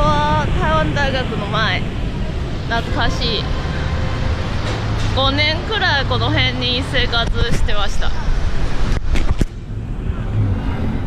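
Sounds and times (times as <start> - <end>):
rumble of passing cars: 0.0 - 11.0.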